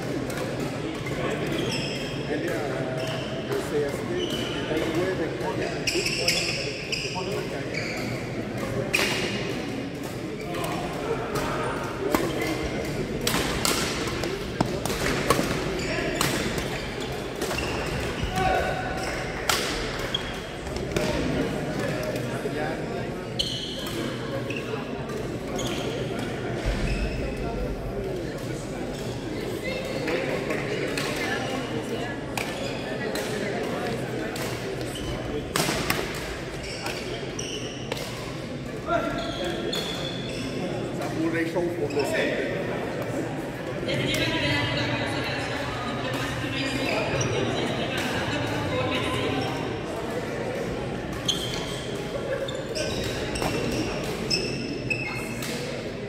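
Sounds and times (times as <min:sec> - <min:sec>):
murmur of voices: 0:00.0 - 0:56.0.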